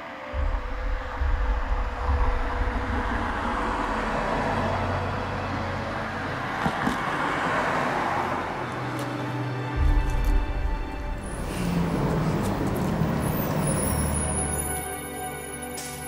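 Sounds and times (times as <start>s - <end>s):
tyre and road noise: 0.3s - 16.0s
vehicle engine rumble: 0.3s - 16.0s.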